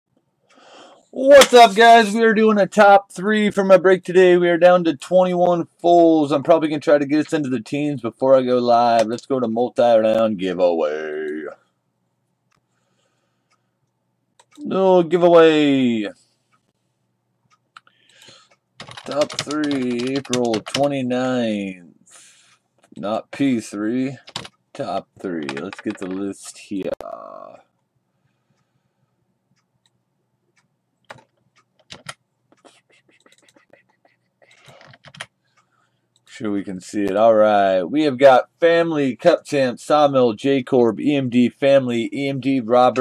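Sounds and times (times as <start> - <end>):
keyboard and mouse clicking: 14.4 - 14.7, 17.7 - 21.0, 24.2 - 27.0, 29.8 - 35.3.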